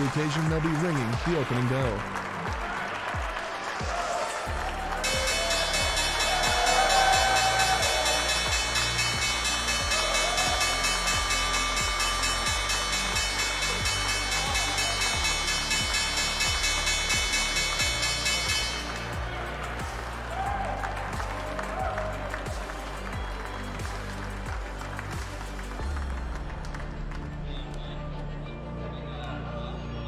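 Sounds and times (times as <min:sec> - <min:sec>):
applause: 0:00.0 - 0:28.5
background music: 0:00.0 - 0:30.0
electric bell ringing: 0:05.0 - 0:19.2.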